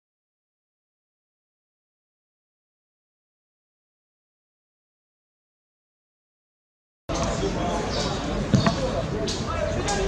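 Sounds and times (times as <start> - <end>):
open-air pitch ambience: 7.1 - 10.0.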